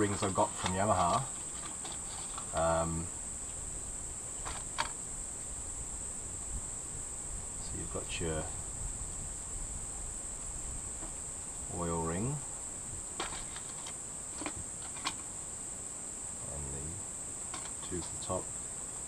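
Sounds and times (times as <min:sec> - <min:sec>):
crickets chirping: 0:00.0 - 0:19.0
murmured voice: 0:16.4 - 0:17.0.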